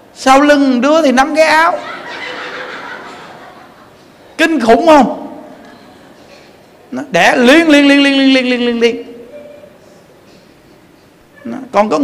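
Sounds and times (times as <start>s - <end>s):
audience laughing: 1.8s - 4.1s.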